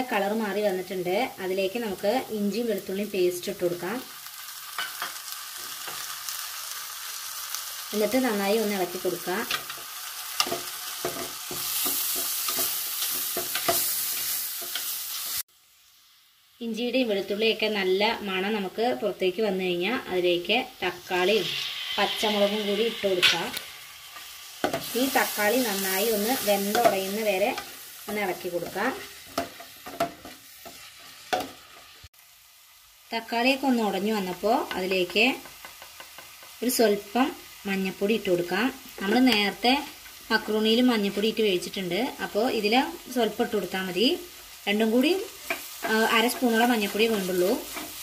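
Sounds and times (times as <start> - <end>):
onions sizzling in oil: 0.0 - 48.0
spatula scraping and tapping pan: 9.5 - 15.0, 22.3 - 24.9, 26.7 - 31.9, 34.6 - 36.6, 45.4 - 48.0.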